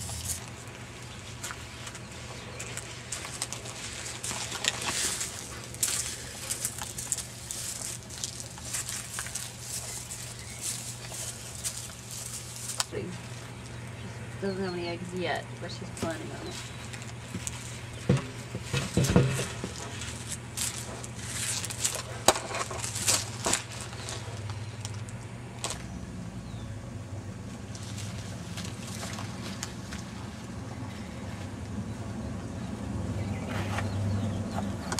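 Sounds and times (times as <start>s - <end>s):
dry leaves crunching: 0.0s - 2.0s, 2.6s - 13.8s, 16.3s - 25.9s, 27.4s - 30.5s
steady low hum: 0.0s - 34.9s.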